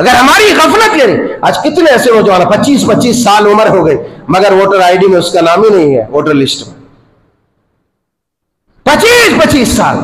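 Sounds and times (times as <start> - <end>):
man speaking: 0.0 - 6.8, 8.8 - 10.0.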